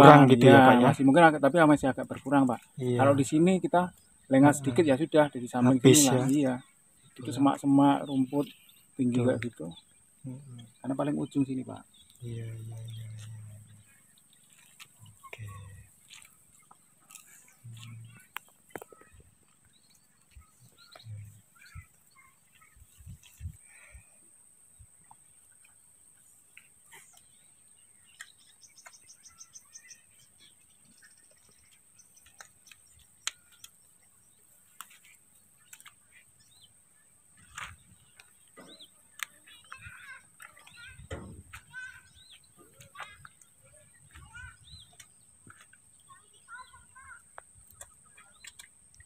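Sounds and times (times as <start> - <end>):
small birds chirping: 0.0 - 49.0
small clicks: 47.3 - 49.0.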